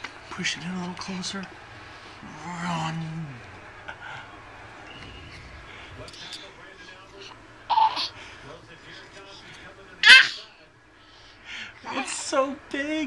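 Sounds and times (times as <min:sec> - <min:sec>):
baby vocalizing excitedly: 0:07.7 - 0:08.1, 0:10.0 - 0:10.4.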